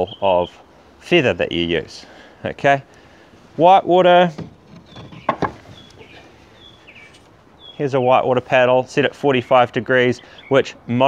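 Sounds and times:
small bird chirping: 0:00.0 - 0:00.6, 0:04.7 - 0:08.2.

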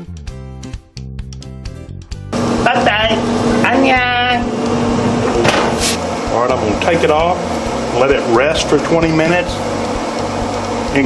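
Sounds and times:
smoker fan humming: 0:02.1 - 0:11.0
short hiss: 0:05.8 - 0:06.0.

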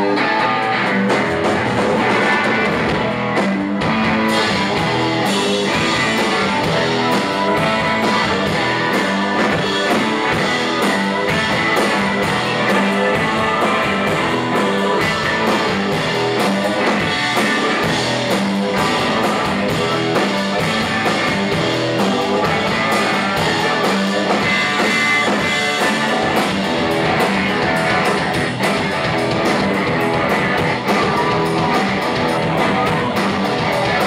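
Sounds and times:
drum kit beat: 0:00.0 - 0:34.0
electric guitars: 0:00.0 - 0:34.0.

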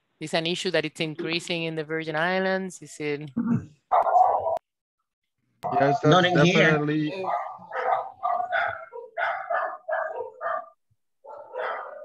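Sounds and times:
dog barking: 0:03.9 - 0:04.6, 0:07.2 - 0:12.0.

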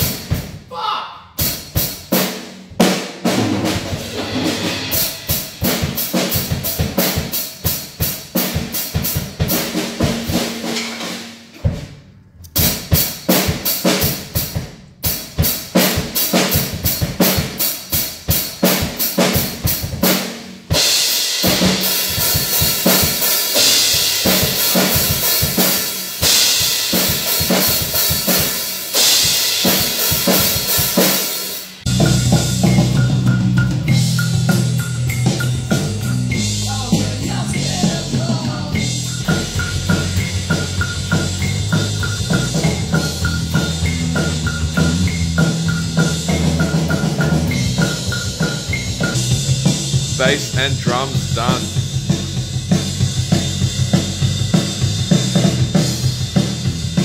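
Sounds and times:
fast drum hits: 0:00.0 - 0:00.6, 0:01.4 - 0:12.0, 0:15.2 - 0:31.2, 0:35.3 - 0:57.0.

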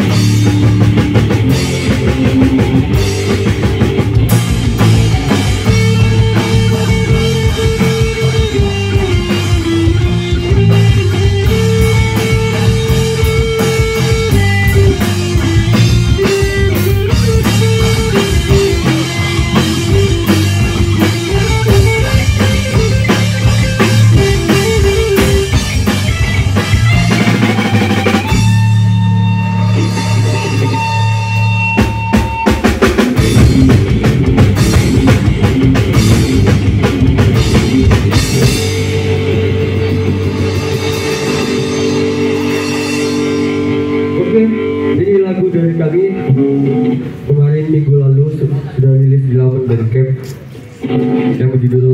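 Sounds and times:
drum kit: 0:00.0 - 0:45.2
bass guitar: 0:00.0 - 0:51.9
electric guitar: 0:00.0 - 0:51.9.

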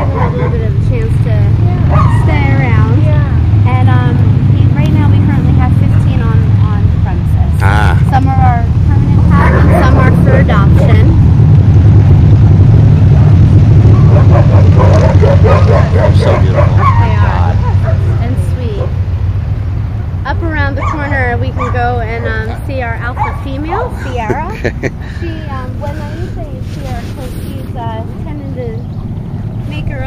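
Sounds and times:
steady low rumble: 0:00.0 - 0:30.0
dogs whining and yipping: 0:14.0 - 0:18.2.

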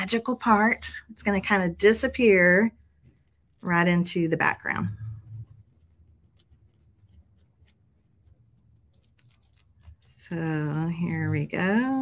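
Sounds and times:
scissors snipping paper: 0:09.0 - 0:11.1.

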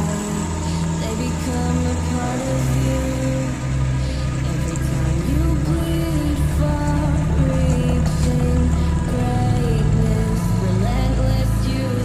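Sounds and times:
song with heavy bass: 0:00.0 - 0:12.0.

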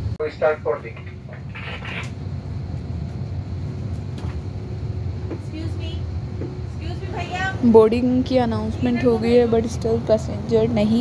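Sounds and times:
cabin ventilation rumble: 0:00.0 - 0:11.0
faint constant hum: 0:00.0 - 0:11.0.

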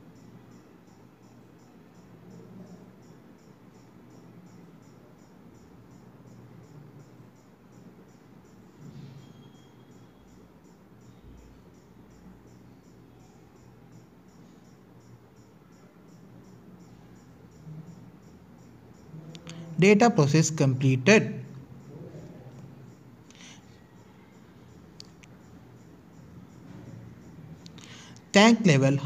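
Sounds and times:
insect chirping: 0:00.0 - 0:29.0.

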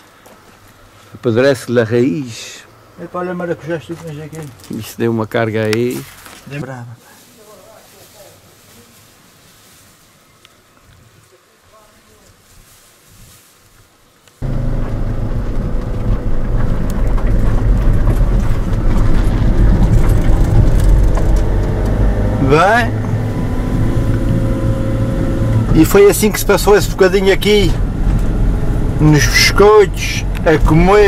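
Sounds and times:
van engine and road noise: 0:14.4 - 0:31.0.

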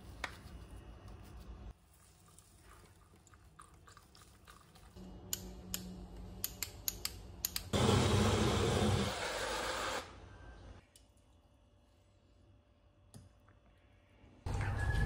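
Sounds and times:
blender whirring: 0:07.8 - 0:10.2.

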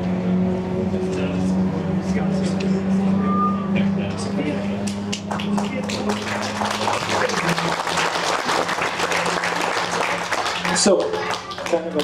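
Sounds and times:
vehicle engine droning: 0:00.0 - 0:12.0.

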